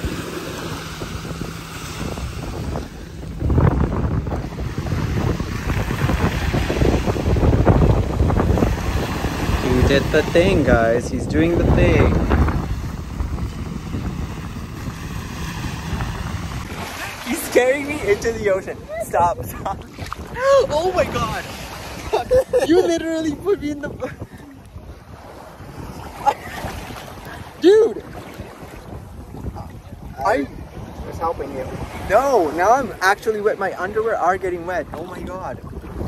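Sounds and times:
small waves breaking: 0:00.0 - 0:36.0
wind noise on microphone: 0:00.0 - 0:36.0.

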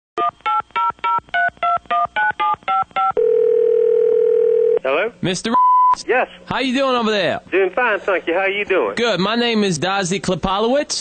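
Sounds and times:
touch-tone dialing beeps: 0:00.2 - 0:04.8, 0:05.6 - 0:06.0
steady telephone line tone: 0:02.7 - 0:04.9.

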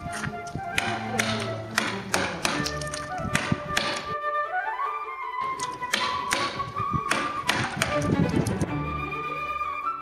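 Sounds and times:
background music: 0:00.0 - 0:10.0
mallet striking chisel: 0:00.1 - 0:04.2, 0:05.6 - 0:08.5.

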